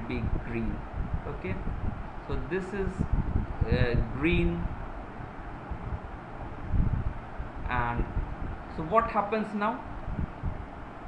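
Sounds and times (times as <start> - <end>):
microphone hiss and low rumble: 0.0 - 11.0.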